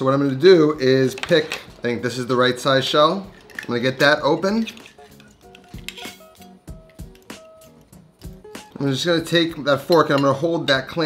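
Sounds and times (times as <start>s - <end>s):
soft background music: 0.0s - 11.0s
knife scraping clam shell: 4.7s - 6.4s.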